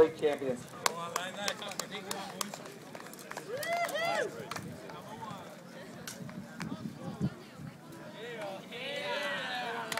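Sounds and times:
young men cheering and shouting: 0:08.7 - 0:09.9.

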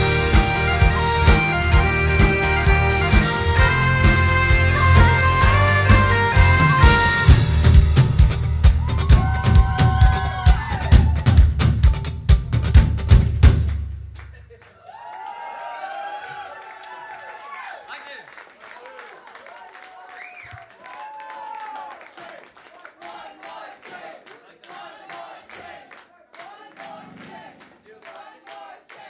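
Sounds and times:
high wind-instrument melody: 0:00.0 - 0:08.2
cymbals ringing: 0:00.0 - 0:09.4
rock band playing: 0:00.0 - 0:13.7
steady drum beat: 0:00.0 - 0:14.2.

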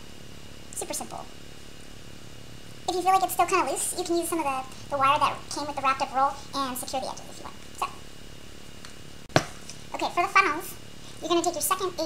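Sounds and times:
sharp knock: 0:09.3 - 0:09.6.

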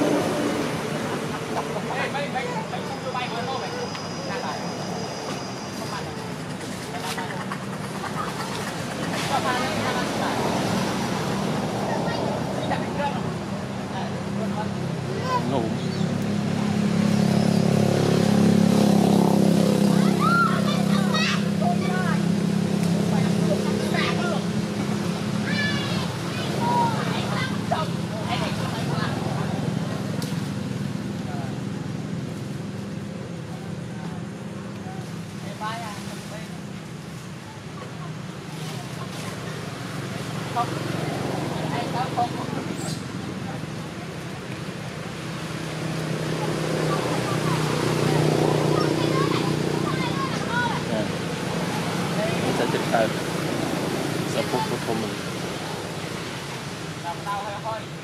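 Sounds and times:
distant indistinct voices: 0:00.0 - 0:58.0.

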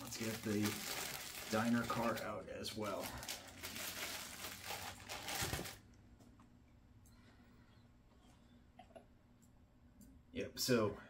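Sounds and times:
plastic bag crinkling: 0:00.0 - 0:05.9.

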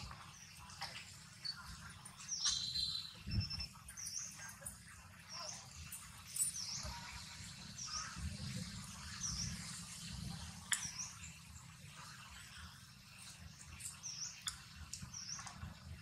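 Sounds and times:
small bird chirping: 0:00.1 - 0:04.7, 0:08.9 - 0:11.6, 0:13.6 - 0:15.6.

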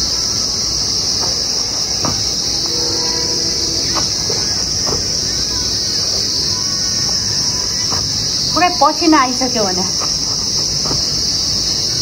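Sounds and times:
insects chorus in trees: 0:00.0 - 0:12.0.

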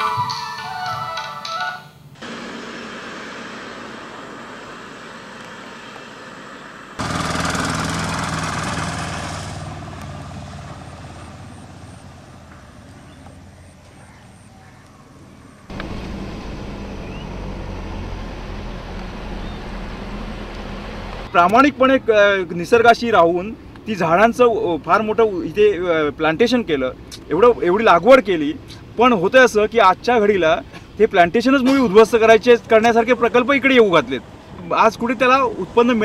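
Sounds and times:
vehicle engine and travel noise: 0:02.0 - 0:36.0.

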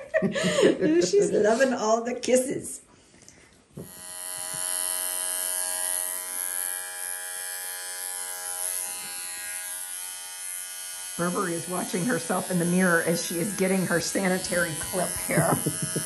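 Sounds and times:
electric clippers buzzing: 0:03.8 - 0:16.0.

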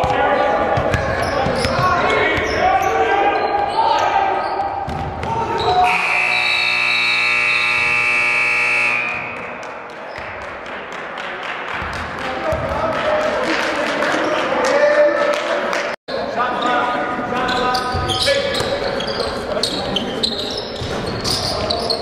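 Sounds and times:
scoreboard buzzer blast: 0:05.8 - 0:09.5.

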